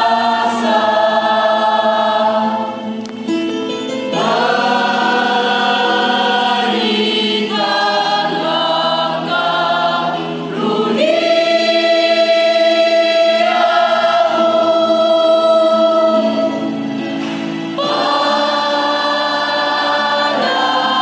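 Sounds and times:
choir singing a hymn: 0.0s - 21.0s.

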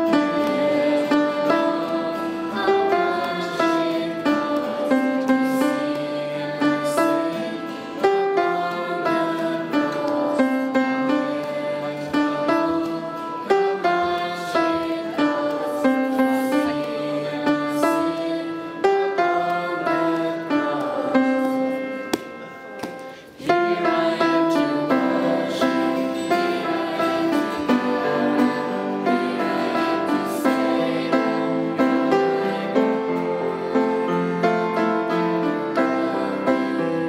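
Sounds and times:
choir singing a worship song: 0.0s - 37.0s
instrumental accompaniment: 0.0s - 37.0s.

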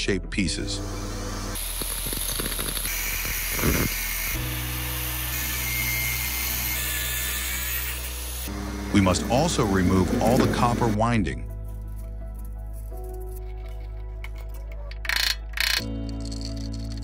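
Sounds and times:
background music: 0.0s - 2.2s, 4.0s - 17.0s.

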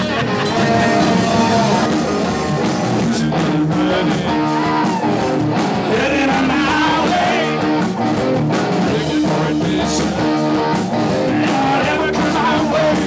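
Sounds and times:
electric guitar: 0.0s - 13.0s
live rock band playing: 0.0s - 13.0s.

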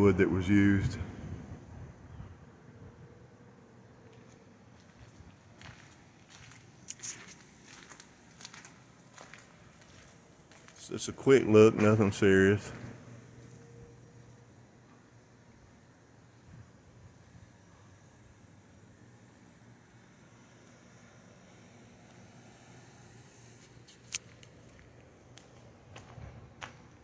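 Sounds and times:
faint low hum: 0.0s - 27.0s.

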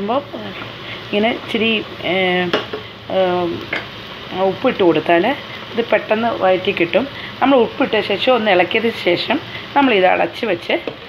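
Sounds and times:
onions frying in oil: 0.0s - 11.0s.

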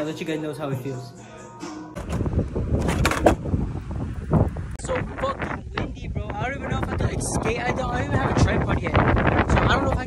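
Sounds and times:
skateboard rolling on concrete: 2.0s - 3.8s
wind buffeting microphone: 2.0s - 10.0s.

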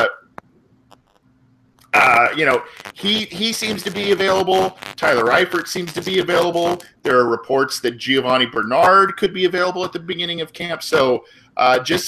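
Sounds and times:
faint low hum: 0.0s - 12.0s
man speaking: 2.0s - 12.0s.

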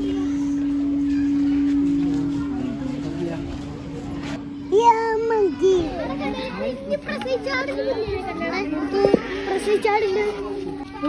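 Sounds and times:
chatter of voices: 0.0s - 11.0s
steady low hum: 0.0s - 11.0s.

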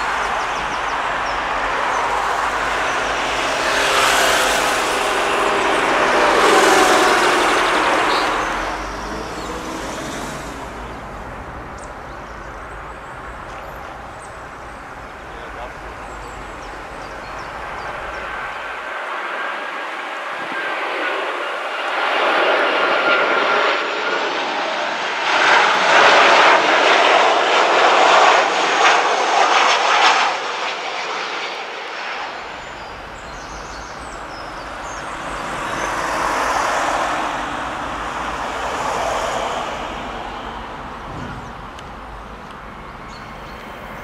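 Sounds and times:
jet engine noise: 0.0s - 44.0s.

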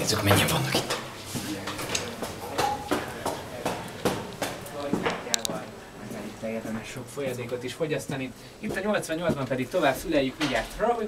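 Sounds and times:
indistinct voices: 0.0s - 9.6s
footsteps on hard floor: 0.9s - 5.2s.

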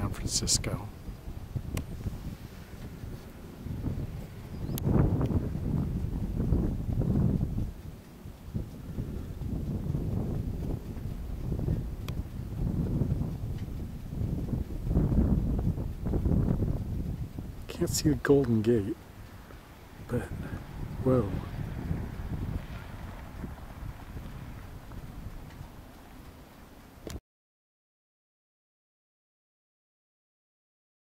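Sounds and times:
wind buffeting microphone: 0.0s - 27.2s
faint clicks: 4.2s - 5.4s, 7.2s - 17.7s, 24.2s - 27.2s.

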